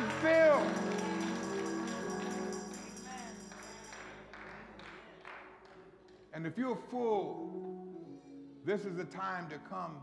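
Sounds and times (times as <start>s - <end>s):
hand claps: 0.0s - 6.2s.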